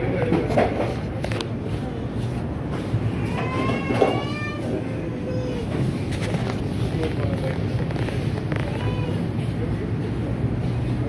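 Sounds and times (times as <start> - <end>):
supermarket background rumble: 0.0 - 11.0.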